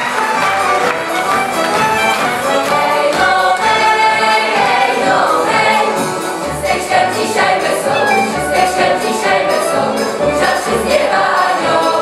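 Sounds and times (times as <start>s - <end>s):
instrumental accompaniment: 0.0s - 12.0s
mixed choir singing a carol: 2.3s - 12.0s.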